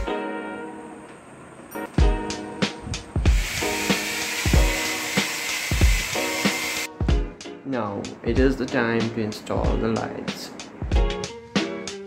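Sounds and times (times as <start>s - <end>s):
background music with beat: 0.0s - 0.5s, 1.8s - 12.0s
electric drill running: 3.3s - 6.9s.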